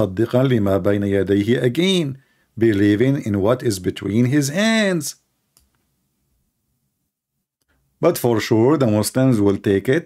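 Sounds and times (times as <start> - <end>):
man's voice: 0.0 - 5.2
faint click: 5.5 - 5.9.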